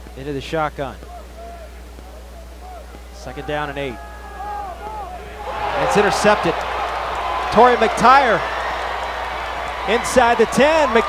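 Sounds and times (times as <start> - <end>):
stadium crowd noise: 0.9 - 11.0
commentator speaking: 5.7 - 6.6, 9.9 - 11.0.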